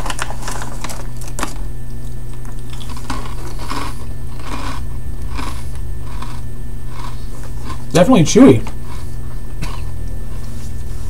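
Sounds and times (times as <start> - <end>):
person chewing crunchy food: 0.0 - 11.0
steady low hum: 0.0 - 11.0.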